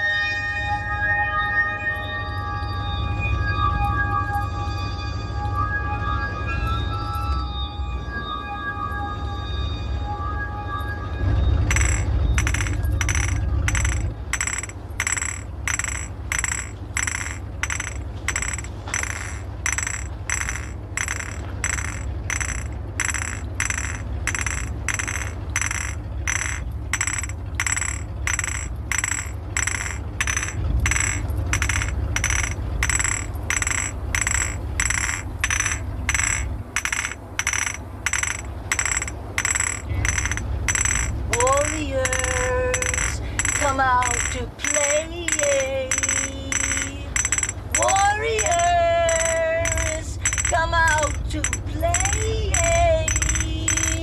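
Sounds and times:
continuous low rumble: 0.0s - 54.0s
glass bottles clinking: 11.7s - 54.0s.

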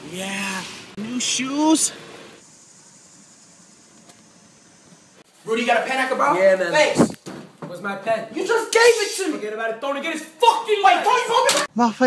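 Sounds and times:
faint outdoor hiss: 0.0s - 11.7s.

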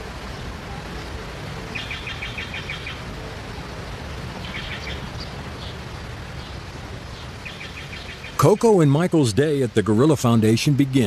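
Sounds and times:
songbirds chirping trills: 0.0s - 11.0s.

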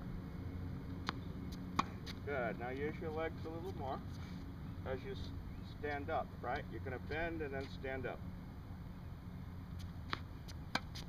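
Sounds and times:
low outdoor rumble: 0.0s - 11.0s
tennis ball bouncing on court: 0.9s - 2.2s, 9.8s - 11.0s
racquet hitting tennis ball: 1.0s - 2.2s, 10.0s - 11.0s.

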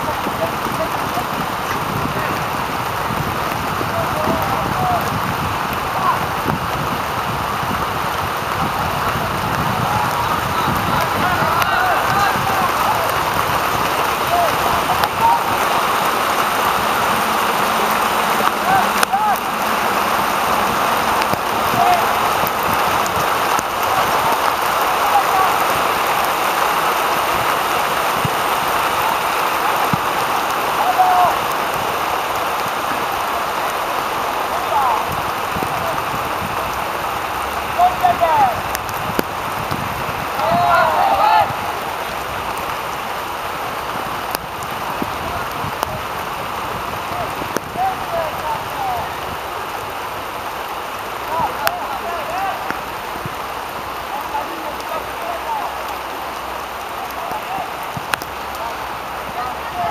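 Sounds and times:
players shouting and calling: 0.0s - 59.9s.

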